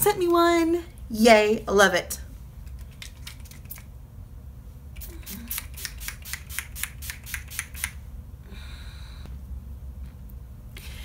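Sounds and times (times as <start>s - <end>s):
spray bottle spritzes: 5.0s - 8.0s.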